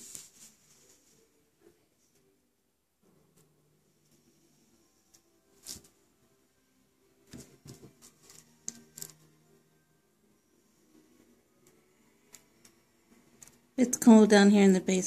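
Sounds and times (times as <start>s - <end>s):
faint music: 0.0s - 15.0s.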